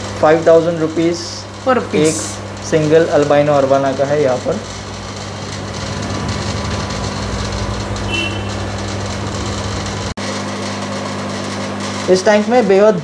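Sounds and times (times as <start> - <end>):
aquarium air pump humming: 0.0 - 13.0.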